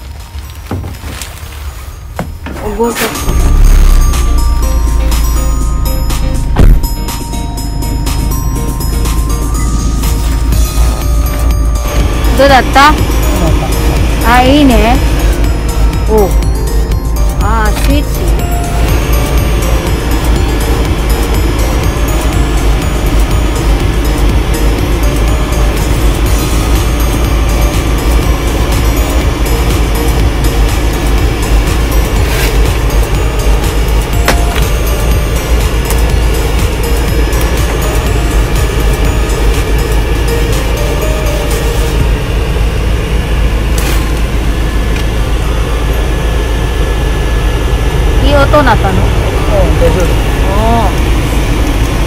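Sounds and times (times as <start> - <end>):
music: 0.0 - 47.5
engine idling: 0.0 - 52.0
heater blower motor running: 0.0 - 52.0.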